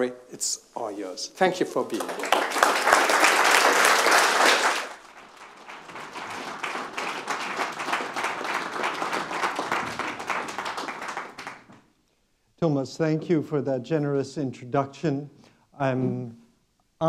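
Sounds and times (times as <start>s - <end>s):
audience applauding: 1.8s - 11.8s.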